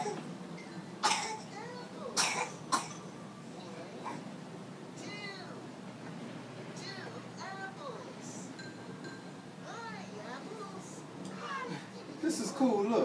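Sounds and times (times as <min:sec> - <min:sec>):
harsh coughs: 0:01.0 - 0:01.4, 0:02.2 - 0:03.0.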